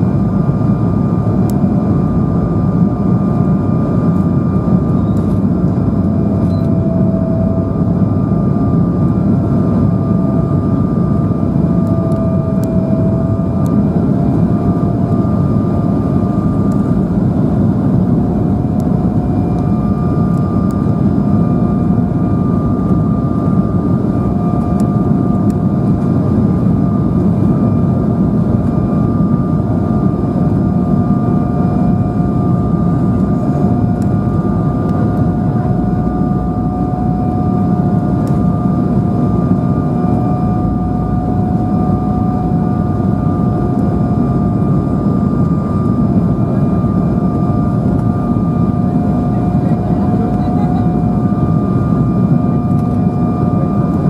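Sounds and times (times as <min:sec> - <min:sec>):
engine whine: 0:00.0 - 0:54.0
jet engine rumble: 0:00.0 - 0:54.0.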